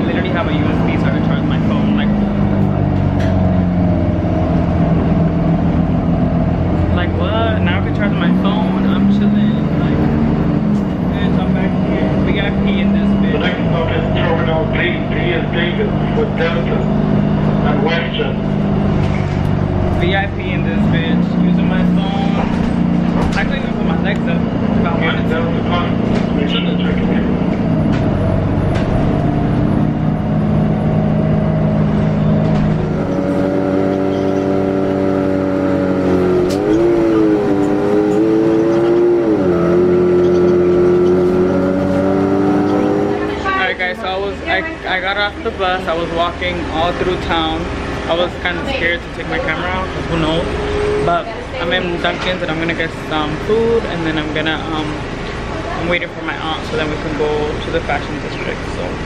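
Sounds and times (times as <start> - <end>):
bus engine drone: 0.0 - 59.0.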